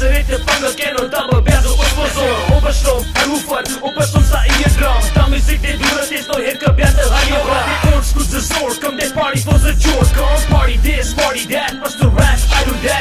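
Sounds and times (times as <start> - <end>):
rapping over a beat: 0.0 - 13.0.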